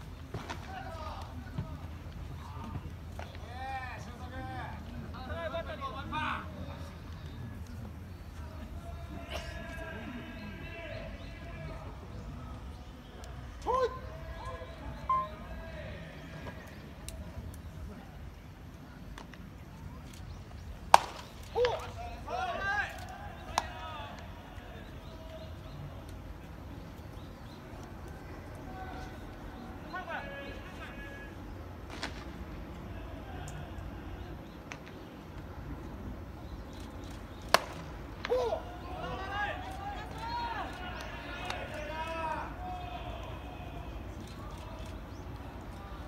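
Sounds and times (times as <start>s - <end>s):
ballplayers shouting calls: 8.3s - 16.9s, 20.9s - 26.6s, 28.1s - 31.6s, 37.5s - 46.0s.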